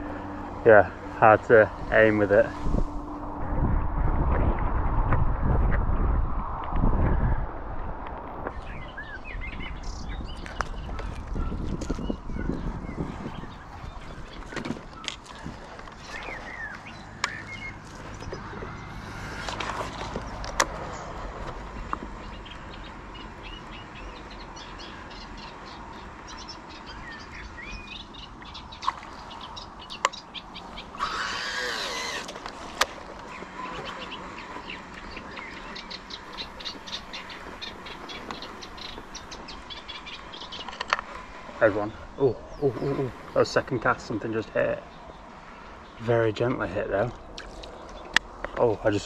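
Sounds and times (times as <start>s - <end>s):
small birds chirping: 8.5s - 49.0s.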